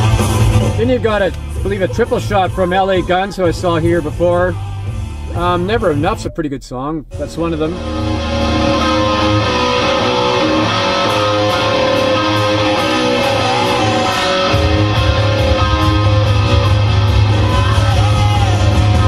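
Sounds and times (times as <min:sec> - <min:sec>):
electric guitar: 0:00.0 - 0:01.8, 0:07.2 - 0:19.0
hard rock song: 0:00.0 - 0:06.2, 0:07.1 - 0:19.0
bass and drums: 0:00.0 - 0:19.0.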